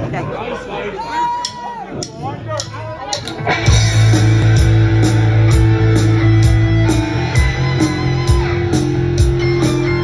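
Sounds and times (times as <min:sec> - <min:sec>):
live rock band playing: 0:02.7 - 0:10.0.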